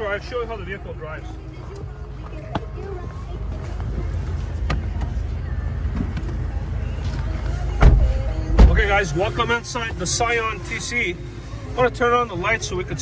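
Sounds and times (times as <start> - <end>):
heavy thump: 7.8 - 8.9.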